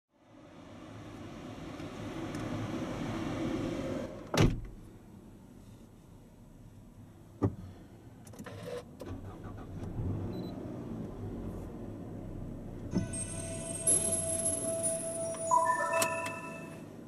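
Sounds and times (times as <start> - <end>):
car engine starting and idling: 8.3 - 17.0
electronic tones from car audio: 13.0 - 17.0.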